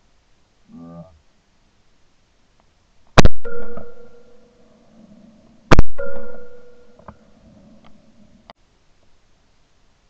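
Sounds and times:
shotgun shots: 0:03.2 - 0:04.4, 0:05.7 - 0:07.0
steady ringing tone: 0:03.4 - 0:04.8, 0:05.8 - 0:07.4.

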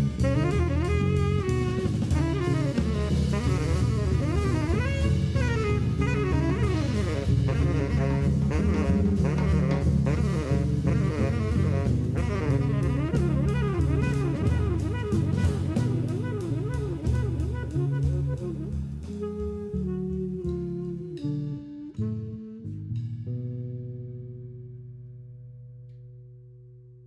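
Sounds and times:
guitar: 0:00.0 - 0:18.5
drum kit with cymbal strokes: 0:00.0 - 0:23.4
tenor saxophone: 0:00.0 - 0:23.4.

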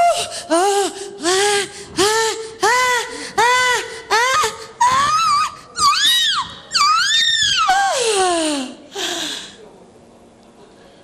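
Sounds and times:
woman wailing: 0:00.0 - 0:08.6.

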